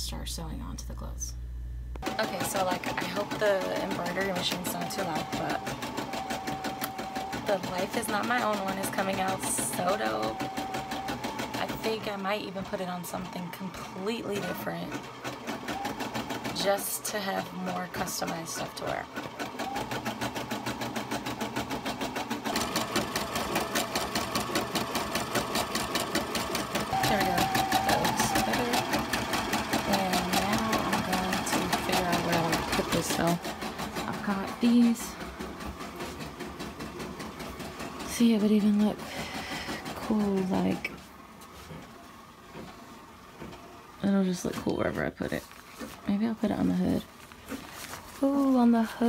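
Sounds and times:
embroidery machine stitching: 2.0s - 42.1s
fabric handling: 47.1s - 48.6s.

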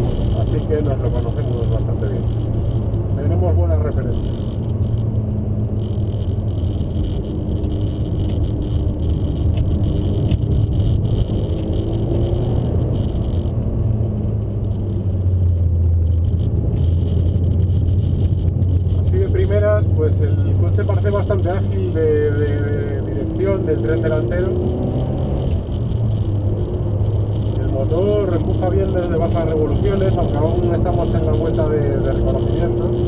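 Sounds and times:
car engine drone from inside cabin: 0.0s - 33.0s.

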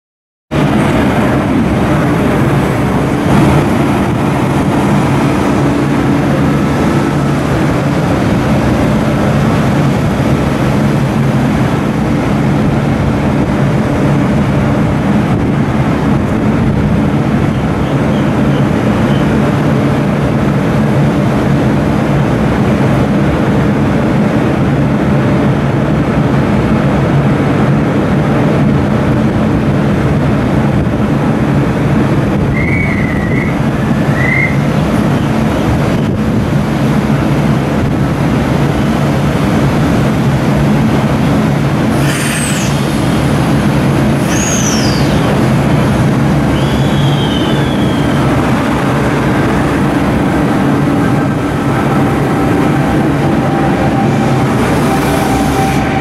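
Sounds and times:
electric train humming: 0.5s - 56.0s.

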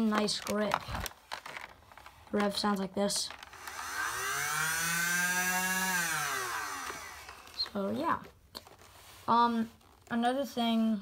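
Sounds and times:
flywheel motors whining: 3.3s - 7.8s.

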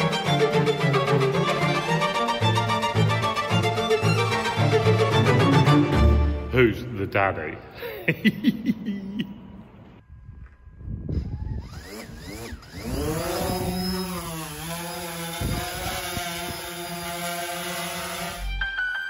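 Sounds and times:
drone propellers whining and humming: 0.0s - 6.4s, 10.0s - 18.6s.

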